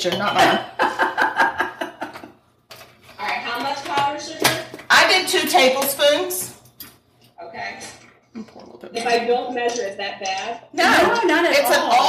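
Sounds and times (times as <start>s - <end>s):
people laughing: 0.6s - 2.4s.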